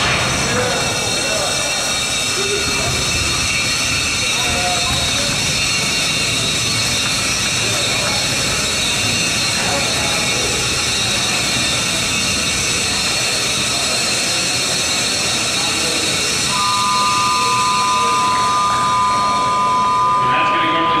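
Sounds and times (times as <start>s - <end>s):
continuous high whine: 0.0s - 21.0s
voices in a hall: 0.0s - 21.0s
two-note tone: 16.5s - 21.0s.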